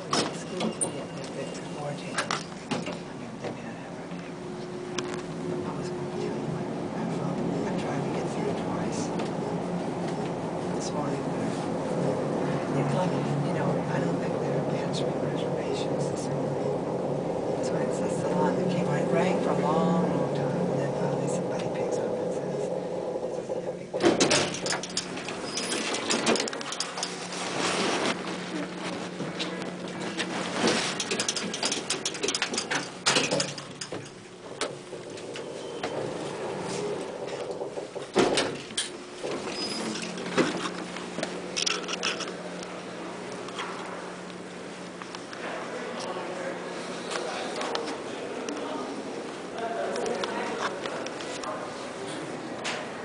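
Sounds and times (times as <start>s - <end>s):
elevator doors opening: 0.0s - 44.7s
elevator humming: 0.0s - 53.0s.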